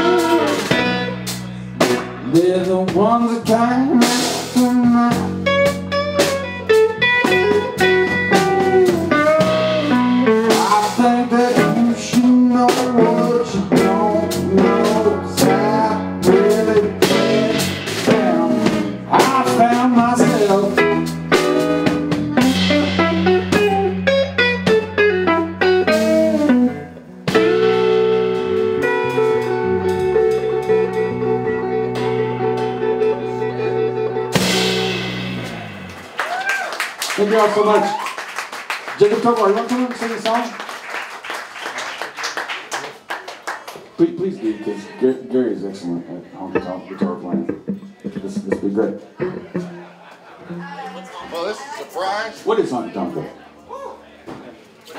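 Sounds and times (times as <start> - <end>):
lead electric guitar bending notes: 0.0 - 2.7, 3.5 - 36.1, 46.5 - 51.3
live blues-rock band: 0.0 - 39.3, 46.5 - 51.3.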